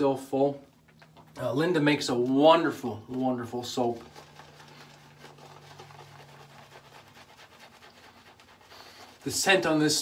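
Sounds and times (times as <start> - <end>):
brush scratching lather on skin: 2.1 - 10.0.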